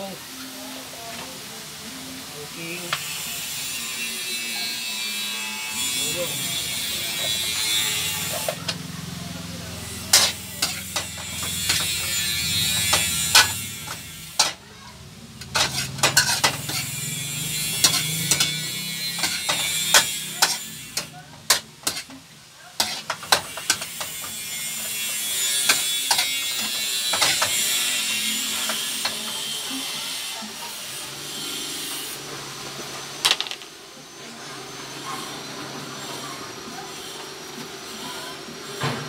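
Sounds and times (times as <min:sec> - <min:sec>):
food sizzling in a pan: 0:00.0 - 0:33.2
metal utensil scraping a wok: 0:02.8 - 0:14.6, 0:15.3 - 0:32.3.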